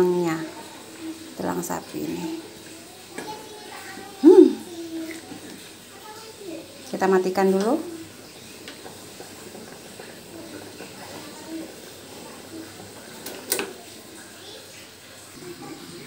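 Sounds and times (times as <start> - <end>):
broth simmering in a pot: 0.0 - 16.0.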